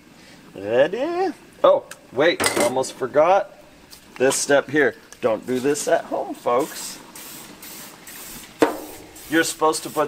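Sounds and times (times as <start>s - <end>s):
cooking spray hissing onto grill: 5.4s - 10.0s.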